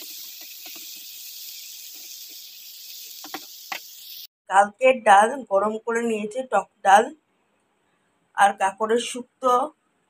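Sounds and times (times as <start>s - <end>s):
vegetables sizzling in oil: 0.0s - 4.3s.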